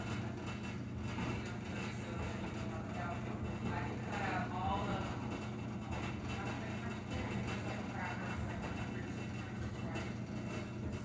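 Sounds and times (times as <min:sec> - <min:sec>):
washing machine humming: 0:00.0 - 0:11.0.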